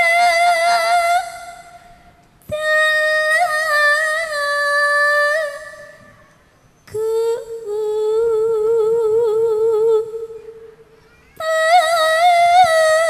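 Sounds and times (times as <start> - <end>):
woman singing unaccompanied: 0.0 - 6.1, 6.9 - 10.6, 11.4 - 13.0.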